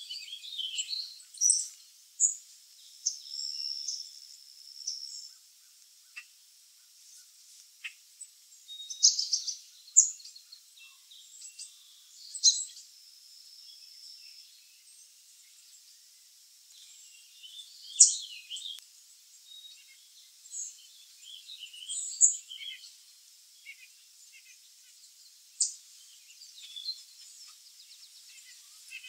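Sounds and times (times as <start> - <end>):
birds chirping: 0.0 - 29.0.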